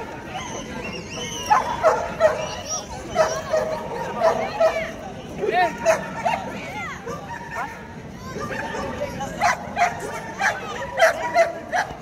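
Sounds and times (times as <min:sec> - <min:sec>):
crowd chatter: 0:00.0 - 0:12.0
dog barking: 0:09.4 - 0:12.0.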